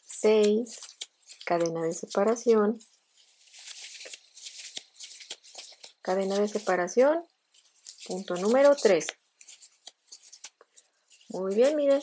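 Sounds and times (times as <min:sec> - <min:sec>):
yarn rustling and scratching: 0:00.0 - 0:12.0.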